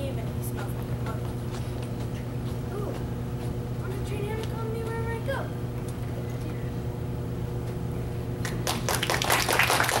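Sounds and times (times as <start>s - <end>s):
audience applauding: 8.4s - 10.0s.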